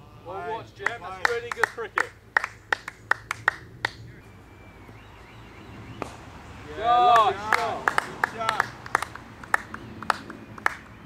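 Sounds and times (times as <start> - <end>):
hand claps: 0.8 - 4.0, 7.1 - 11.0.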